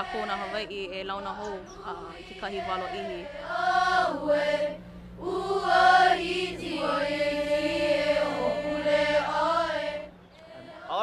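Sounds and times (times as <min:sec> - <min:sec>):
children chanting in unison: 0:01.7 - 0:11.0.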